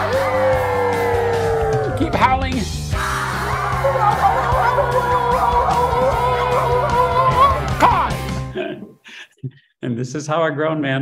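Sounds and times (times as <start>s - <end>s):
wavering wolf-style howls: 0.0s - 2.0s, 3.0s - 8.2s
children's song backing track: 2.1s - 8.5s.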